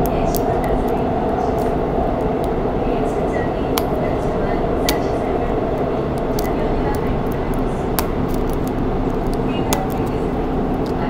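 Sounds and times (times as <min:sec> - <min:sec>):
faint hum: 0:00.0 - 0:11.0
subway train rumbling: 0:00.0 - 0:11.0
sharp clicks of plastic wrappers: 0:06.2 - 0:11.0.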